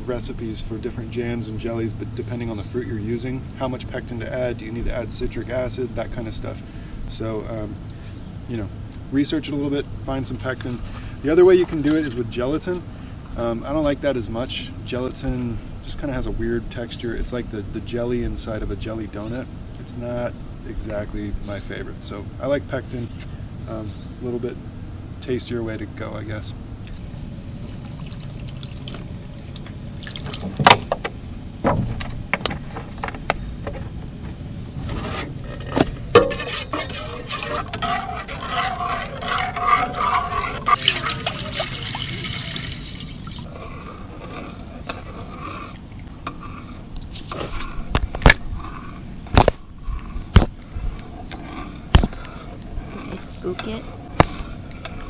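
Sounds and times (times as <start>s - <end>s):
water pouring into metal pot: 40.7s - 43.4s.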